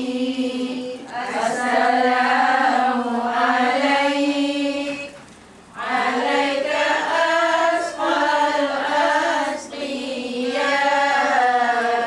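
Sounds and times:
women chanting in unison: 0:00.0 - 0:05.2, 0:05.8 - 0:12.0.

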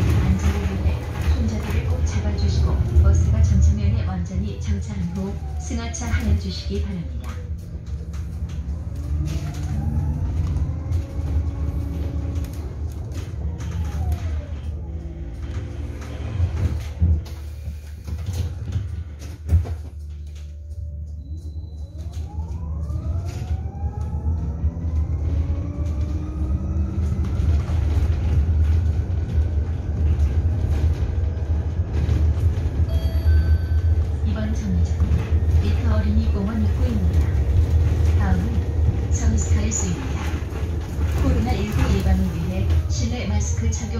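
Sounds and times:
low road rumble: 0:00.0 - 0:43.9.

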